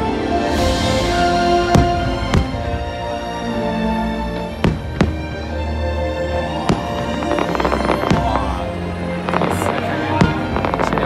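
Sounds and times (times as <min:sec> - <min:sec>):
loud music: 0:00.0 - 0:11.0
fireworks bangs and crackles: 0:01.6 - 0:03.3, 0:04.1 - 0:11.0.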